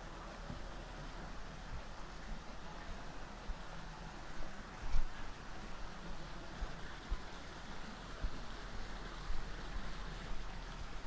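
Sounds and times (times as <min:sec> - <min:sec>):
water rushing from fountains: 0:00.0 - 0:11.0.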